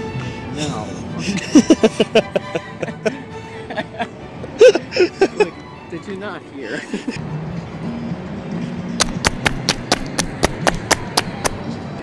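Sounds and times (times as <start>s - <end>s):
quick jogging footsteps: 9.0s - 11.6s.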